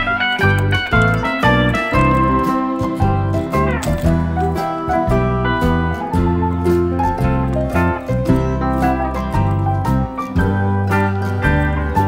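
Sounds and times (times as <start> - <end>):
guitar-led music: 0.0 - 12.0.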